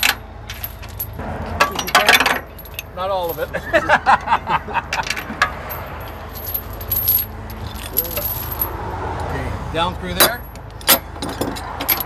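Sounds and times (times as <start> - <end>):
metal chain clinking and rattling: 0.0 - 3.6, 4.9 - 8.8, 10.2 - 12.0.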